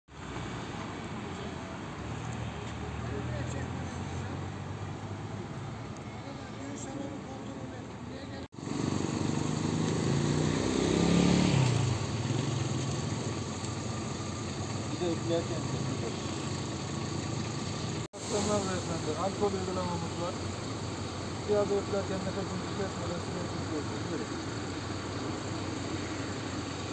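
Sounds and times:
vehicle engines running: 0.1s - 26.9s.

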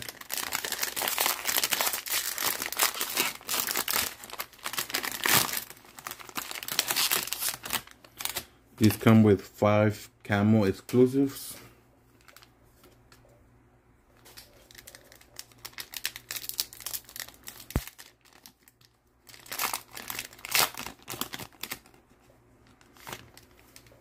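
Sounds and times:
plastic wrapper tearing and crinkling: 0.0s - 8.5s, 14.2s - 22.0s, 22.6s - 24.0s.

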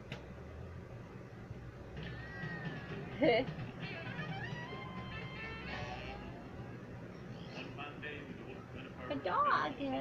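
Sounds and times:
faint room noise: 0.0s - 10.0s
drawn-out meow-like cry: 2.0s - 3.0s.

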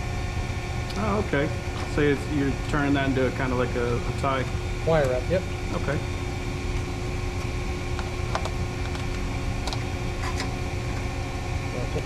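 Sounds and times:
constant hum: 0.0s - 12.0s
industrial machinery rumble: 0.0s - 12.0s.

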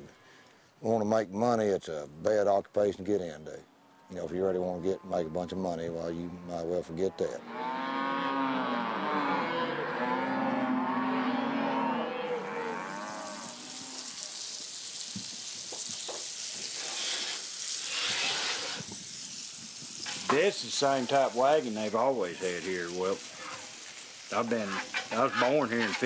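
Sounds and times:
cattle mooing: 7.2s - 14.2s
food frying sizzle: 12.4s - 26.0s.

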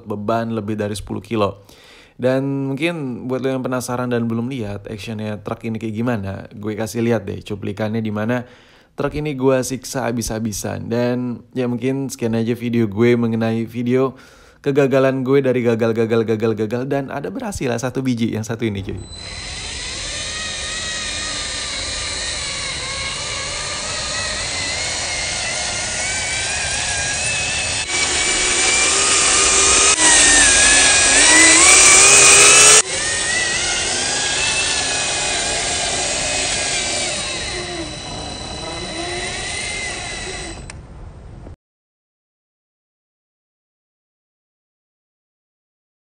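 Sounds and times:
toy truck motor whining: 19.0s - 40.8s.

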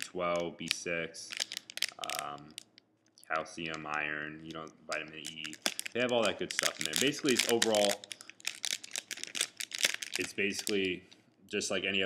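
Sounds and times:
plastic wrapper crinkling: 0.0s - 2.8s, 3.6s - 11.2s.

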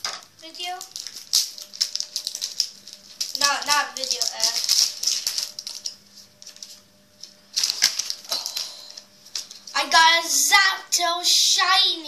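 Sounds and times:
foil wrapper crinkling: 0.4s - 9.8s.

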